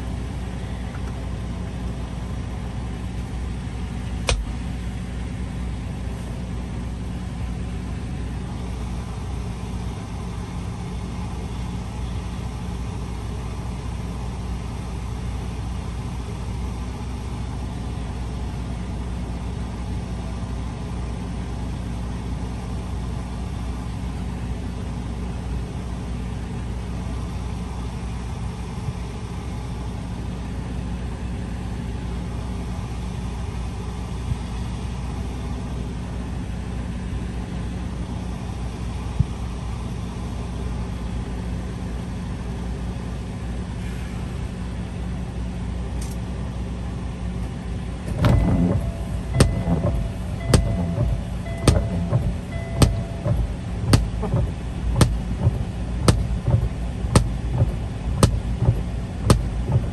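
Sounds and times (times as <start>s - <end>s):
diesel truck engine idling: 0.0s - 59.9s.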